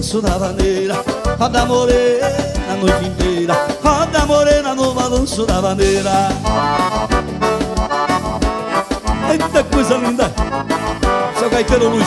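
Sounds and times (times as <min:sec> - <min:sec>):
electric bass: 0:00.0 - 0:12.0
piano accordion: 0:00.0 - 0:12.0
steady low beat: 0:00.1 - 0:12.0.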